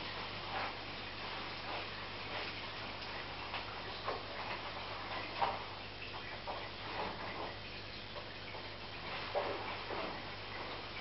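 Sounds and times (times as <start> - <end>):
aquarium filter humming: 0.0 - 11.0.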